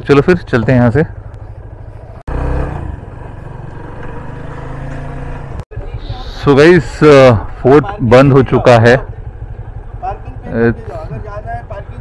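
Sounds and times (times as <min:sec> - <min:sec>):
motorcycle engine idling: 0:00.0 - 0:12.0
motorcycle riding along: 0:00.0 - 0:12.0.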